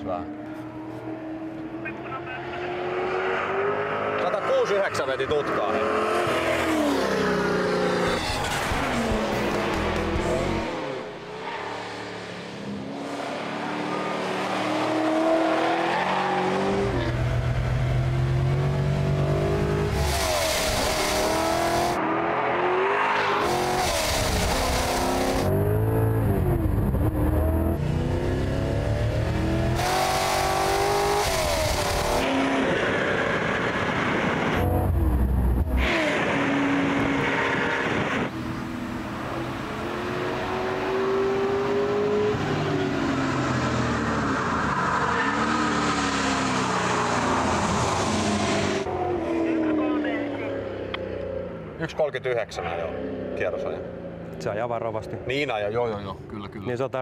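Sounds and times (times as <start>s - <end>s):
race car engine revving: 12.0s - 51.8s.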